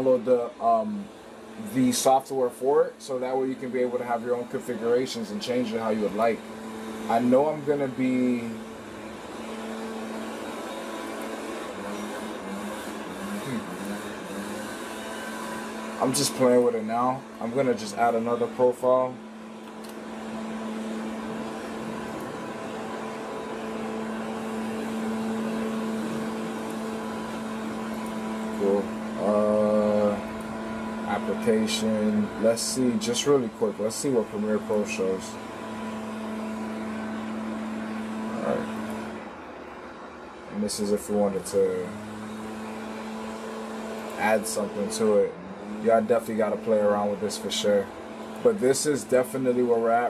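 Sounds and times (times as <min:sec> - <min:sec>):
machine hum: 0:00.0 - 0:50.0.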